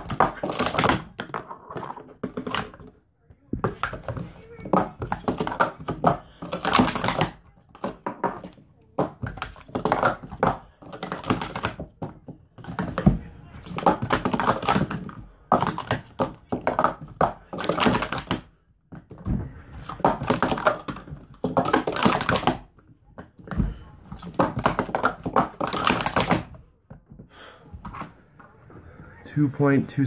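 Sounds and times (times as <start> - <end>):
plastic cups clacking: 0.0 - 3.0, 3.6 - 28.2.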